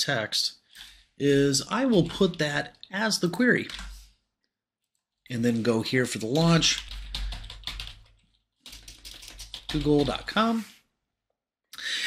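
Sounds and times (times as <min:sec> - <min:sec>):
typing on computer keyboard: 0:03.6 - 0:04.0, 0:06.5 - 0:10.5.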